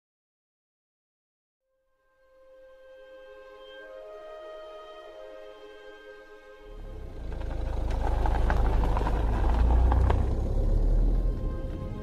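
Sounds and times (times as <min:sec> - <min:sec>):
car engine rumbling: 0:06.6 - 0:12.0.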